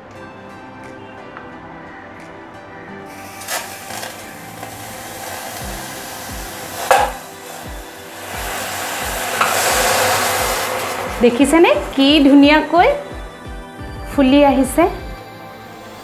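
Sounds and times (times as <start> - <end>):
tea sizzling in hot clay pot: 3.1 - 12.4, 15.5 - 16.0.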